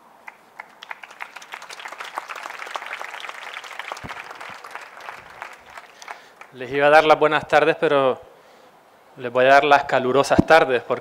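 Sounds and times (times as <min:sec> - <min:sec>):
audience applauding: 0:00.2 - 0:06.6.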